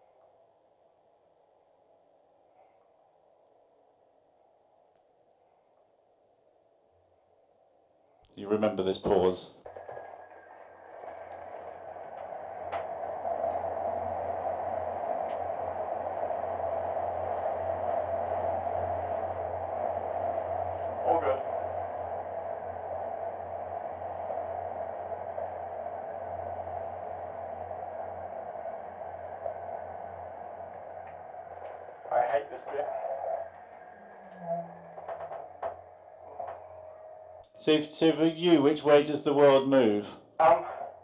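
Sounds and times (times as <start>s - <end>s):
low hum: 0.0s - 41.0s
centrifuge rushing noise: 9.7s - 37.4s.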